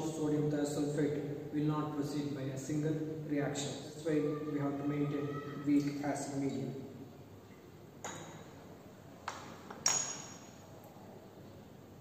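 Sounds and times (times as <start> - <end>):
glassware clinking: 8.0 - 8.6, 9.7 - 10.6.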